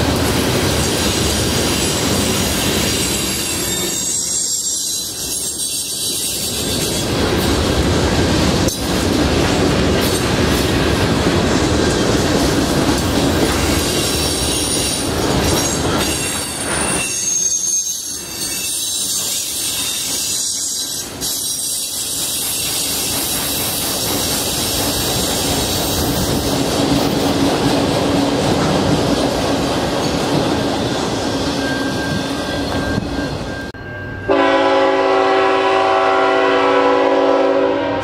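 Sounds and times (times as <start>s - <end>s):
wheel squeal: 1.1s - 7.2s, 13.8s - 23.6s, 30.0s - 33.8s
locomotive air horn chord: 34.3s - 38.0s.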